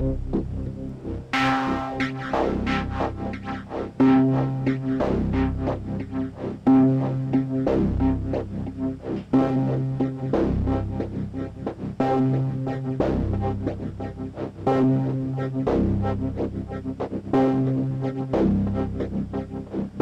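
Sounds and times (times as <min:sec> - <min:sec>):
long low synth note: 0:00.0 - 0:01.2
synth bass pattern with delay: 0:00.0 - 0:02.0.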